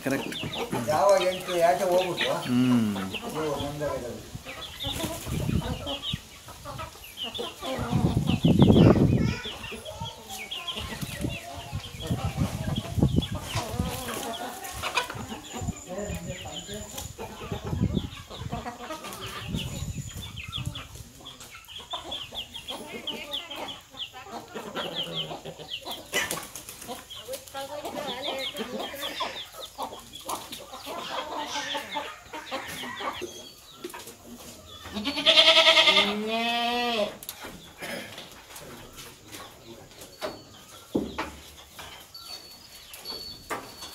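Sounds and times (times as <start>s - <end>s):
chickens clucking and calling: 0.0s - 43.9s.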